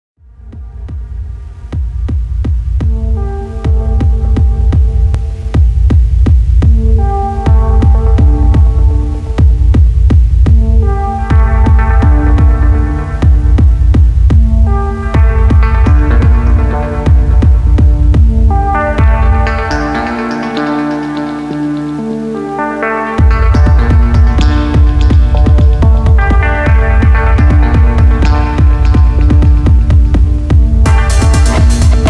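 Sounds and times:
steady beat of sharp hits: 0.2 - 20.5, 23.2 - 32.0
deep bass line: 0.2 - 22.0, 23.2 - 32.0
repeating synth melody: 22.8 - 32.0.

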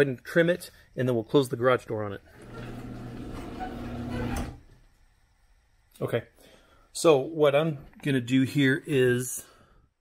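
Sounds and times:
garage door rolling down: 2.3 - 4.7.

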